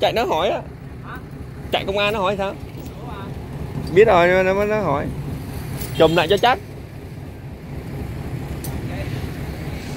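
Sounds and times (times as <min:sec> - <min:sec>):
truck engine idling: 0:00.0 - 0:09.9.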